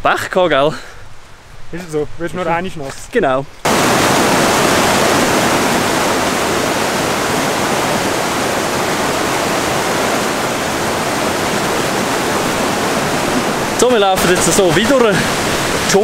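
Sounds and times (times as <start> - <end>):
river rushing over rocks: 3.6 - 16.0.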